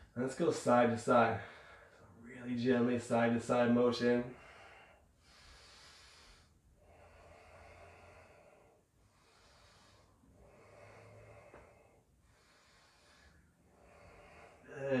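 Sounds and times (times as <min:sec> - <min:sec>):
person breathing slowly: 0:01.3 - 0:02.2, 0:04.2 - 0:15.0.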